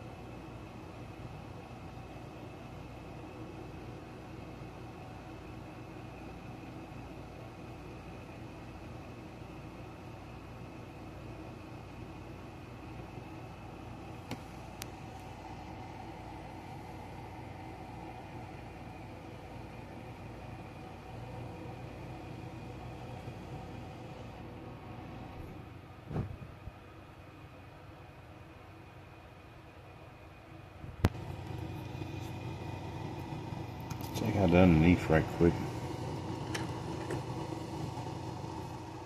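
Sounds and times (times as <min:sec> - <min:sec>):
low mechanical hum: 0:00.0 - 0:39.0
dull thump: 0:26.1 - 0:26.5.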